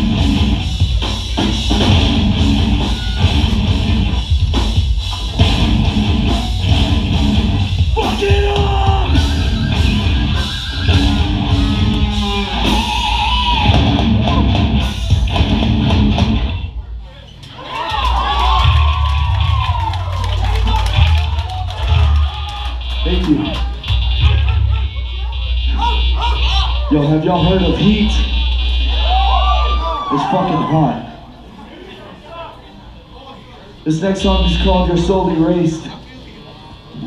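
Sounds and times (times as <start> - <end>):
distorted electric guitars: 0.0 - 16.8, 18.4 - 30.6
bass: 0.0 - 31.1, 33.9 - 35.9
drums: 0.0 - 31.1
shouted vocals: 7.9 - 14.7, 28.9 - 31.2.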